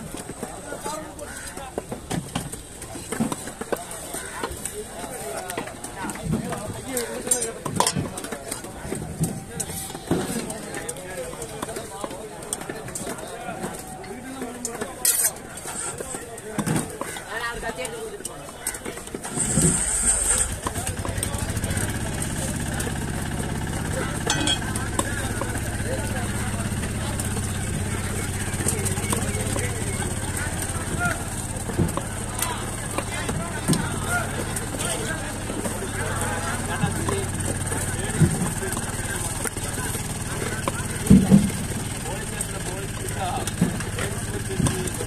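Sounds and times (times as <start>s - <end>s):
engine starting and running: 19.2s - 45.0s.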